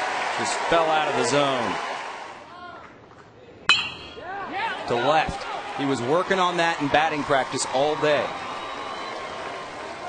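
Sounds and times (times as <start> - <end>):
metal bat pinging ball: 3.7 - 4.4.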